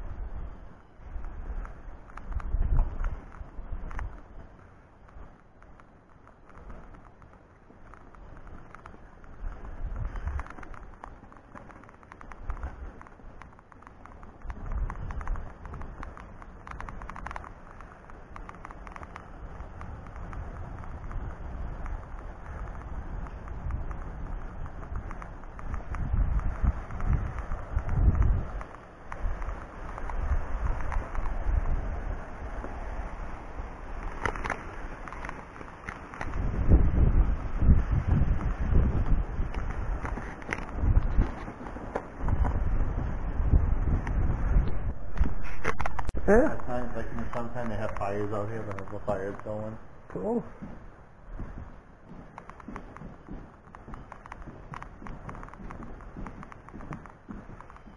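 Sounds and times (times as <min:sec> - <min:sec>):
wind buffeting microphone: 0:00.0 - 0:57.9.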